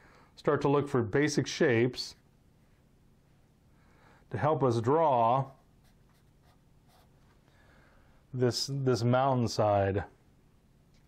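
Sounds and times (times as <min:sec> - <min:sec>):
faint pencil scratching on paper: 0:05.8 - 0:07.2.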